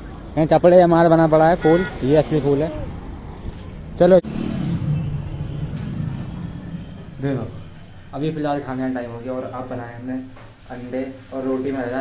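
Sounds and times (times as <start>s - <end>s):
vehicle engine humming: 0.0s - 10.6s.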